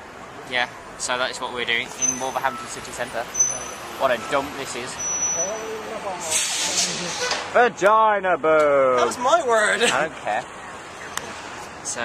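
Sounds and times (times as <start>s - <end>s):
street traffic: 0.0s - 12.0s
bus air brakes hissing: 6.2s - 7.5s.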